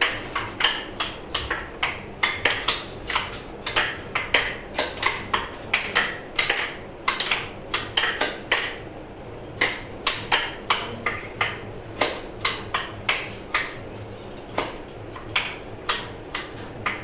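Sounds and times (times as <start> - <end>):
wooden abacus beads clicking: 0.0 - 8.9, 9.6 - 17.0.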